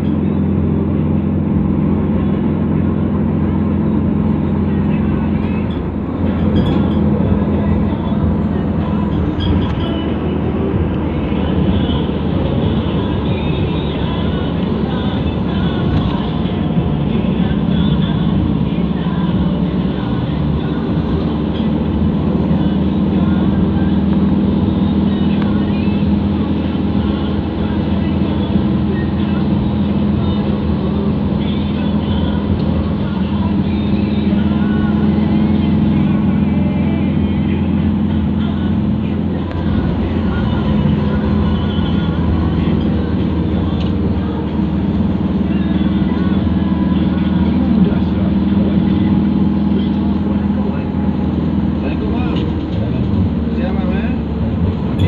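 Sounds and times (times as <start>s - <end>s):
car engine and tyre drone: 0.0s - 55.0s.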